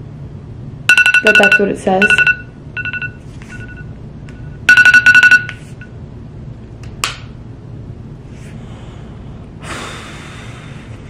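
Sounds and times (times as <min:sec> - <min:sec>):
electronic two-note beeps: 0:00.9 - 0:03.8, 0:04.7 - 0:05.5.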